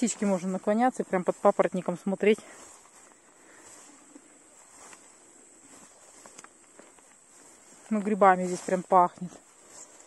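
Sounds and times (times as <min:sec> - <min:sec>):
footsteps rustling through ferns: 0:00.0 - 0:10.0
grasshoppers chirring: 0:00.0 - 0:10.0.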